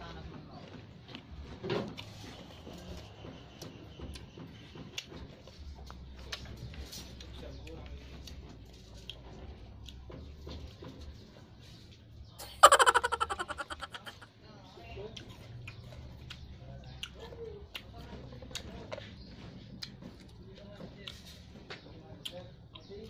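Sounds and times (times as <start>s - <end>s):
mouth clicks of chewing: 15.2s - 18.7s.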